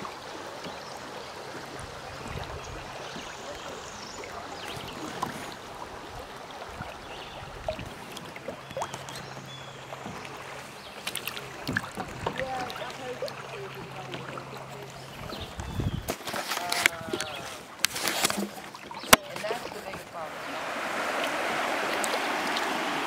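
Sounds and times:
creek water rushing and lapping: 0.0s - 23.0s
sharp knocks and splashes: 0.0s - 23.0s.

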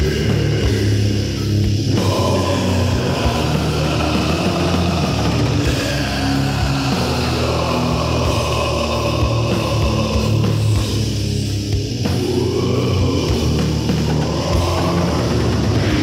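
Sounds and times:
death metal band playing: 0.0s - 16.0s.

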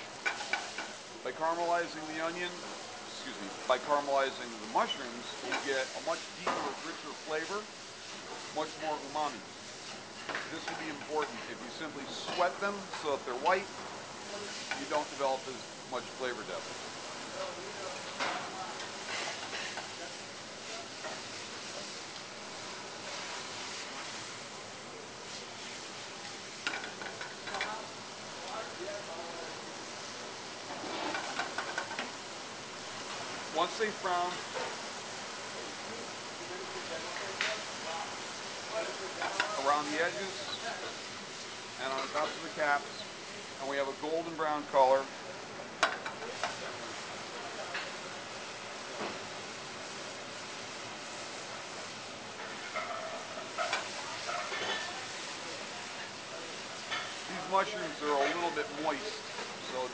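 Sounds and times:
mushrooms sizzling in hot oil: 0.0s - 59.9s.

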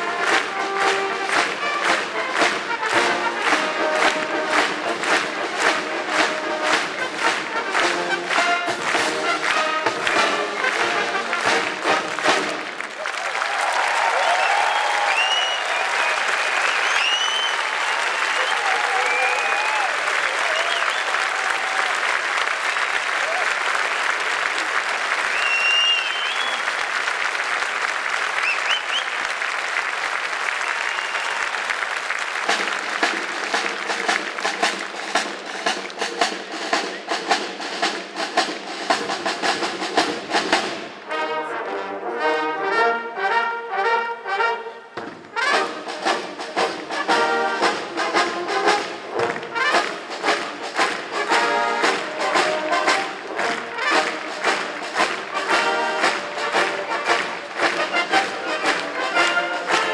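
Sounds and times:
brass band playing: 0.0s - 16.7s, 30.1s - 59.9s
audience applauding: 0.0s - 40.9s, 45.3s - 59.9s
crowd clapping in time: 0.0s - 41.0s, 45.2s - 59.9s
whistles and cheers: 13.0s - 22.4s, 25.1s - 26.9s, 28.3s - 29.4s, 30.4s - 31.9s.

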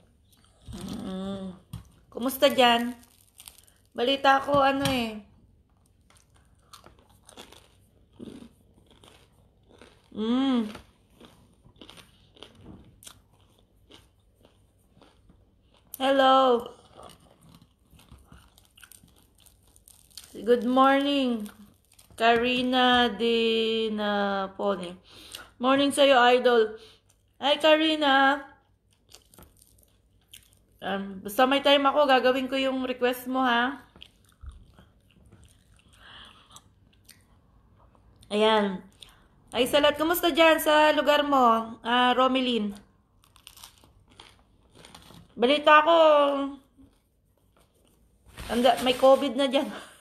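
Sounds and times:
chewing crisp toast: 5.8s - 16.1s, 16.7s - 20.4s, 28.6s - 30.8s, 33.9s - 38.3s, 43.1s - 45.4s.

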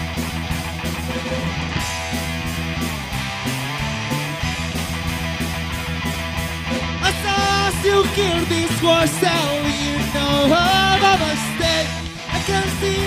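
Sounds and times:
bass guitar: 0.0s - 13.0s
drum kit with cymbals: 0.0s - 13.0s
electric guitars: 0.0s - 13.0s.

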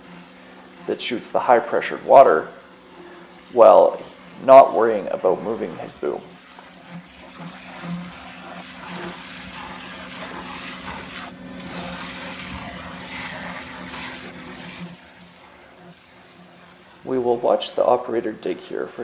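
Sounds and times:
high-pressure water hissing: 0.0s - 19.0s
vacuum system humming: 0.0s - 19.0s.

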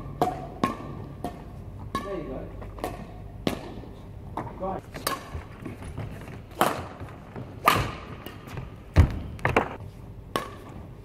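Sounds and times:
racket striking shuttlecock: 0.0s - 5.6s, 6.5s - 10.8s.

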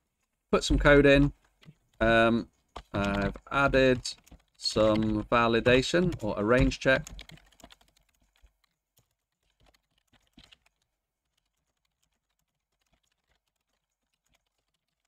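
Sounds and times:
keyboard typing clicks: 0.8s - 15.0s.

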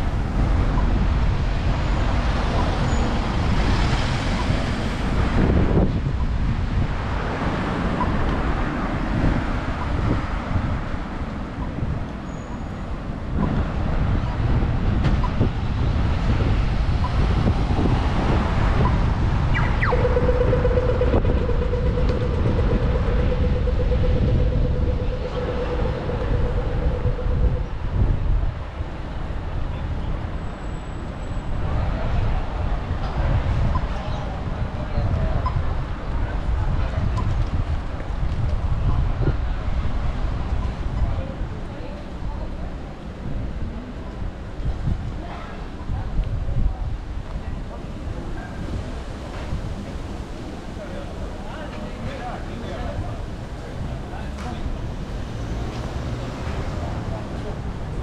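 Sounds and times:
cars driving through intersection: 0.0s - 58.0s
steady mid-pitched tone: 18.8s - 27.8s.

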